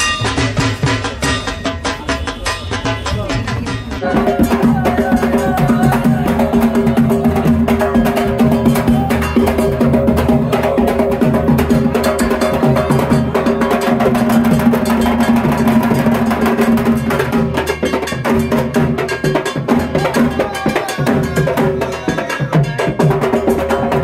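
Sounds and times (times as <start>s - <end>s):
barrel drum beaten rapidly: 0.0s - 24.0s.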